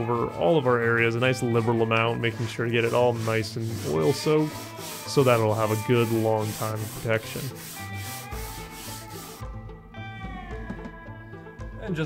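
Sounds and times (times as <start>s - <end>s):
background music: 0.0s - 12.0s
cloth rubbing wood: 1.0s - 9.5s.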